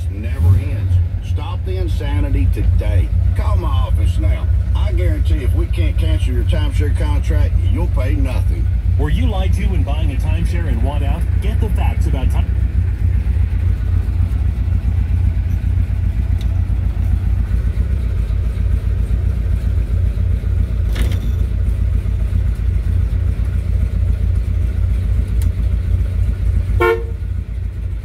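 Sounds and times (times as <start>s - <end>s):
car engine idling: 0.0s - 28.0s
car horn toot: 26.7s - 27.4s.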